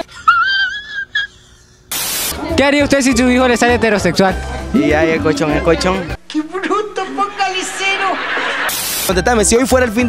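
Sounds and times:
static hiss burst: 1.9 - 2.4, 8.4 - 9.2.

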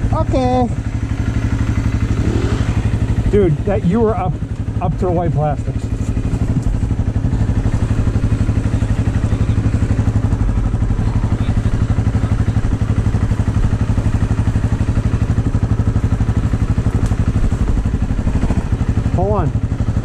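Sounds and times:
dirt bike engine idling: 0.0 - 20.0.

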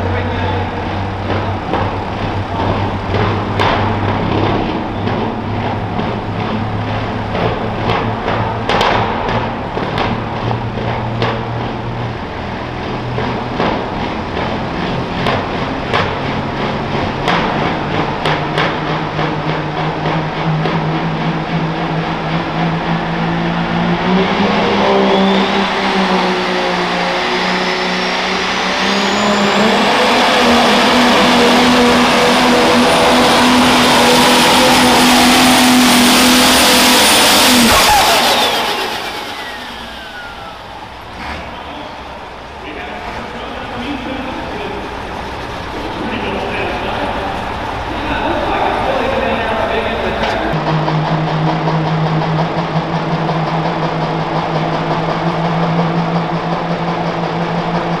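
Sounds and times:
diesel tractor engine: 0.0 - 58.0
turbo whine: 32.6 - 58.0.

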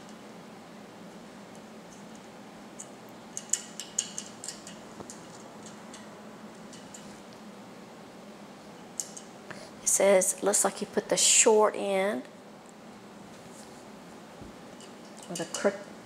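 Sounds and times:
steady low hum: 0.0 - 16.0
allen wrench clicking in screw: 2.8 - 6.1, 6.7 - 7.1.

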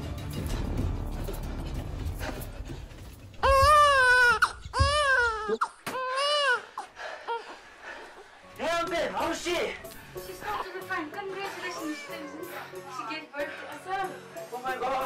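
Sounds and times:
background music: 0.0 - 15.0
newborn baby crying: 3.4 - 6.9.

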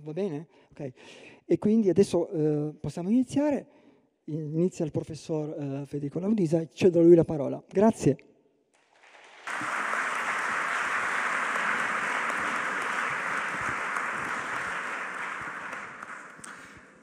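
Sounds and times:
audience applause: 8.8 - 17.0.

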